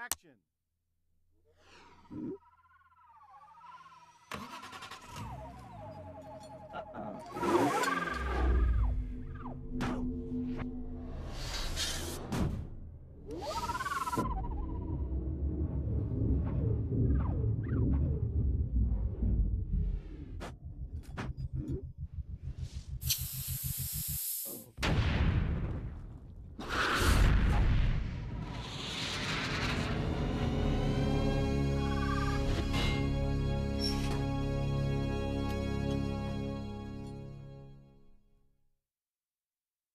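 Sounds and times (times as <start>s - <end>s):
car engine starting and idling: 3.7s - 11.0s
engine throbbing: 3.7s - 24.2s
warbling whine: 5.4s - 12.1s, 13.2s - 24.3s
fuel injector hissing: 23.0s - 24.6s.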